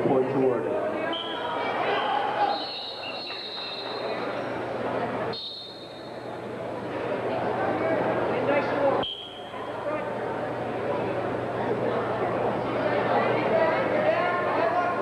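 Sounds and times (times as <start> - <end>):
spectators chattering: 0.0 - 15.0.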